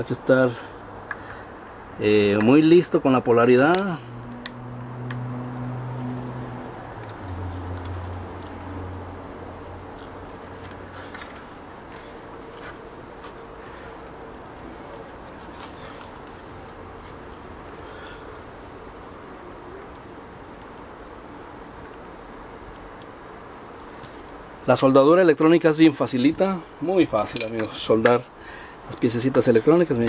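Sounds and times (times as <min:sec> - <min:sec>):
low steady hum: 0:00.0 - 0:30.0
clicks and taps of handled components: 0:01.0 - 0:02.6, 0:03.4 - 0:05.4, 0:10.0 - 0:16.4, 0:27.3 - 0:28.2.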